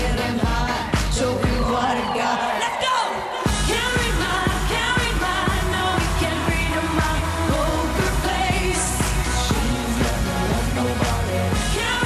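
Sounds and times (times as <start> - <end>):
steady kick drum: 0.0 - 1.8, 3.5 - 12.0
woman singing into microphone: 0.0 - 12.0
electronic backing track: 3.4 - 12.0.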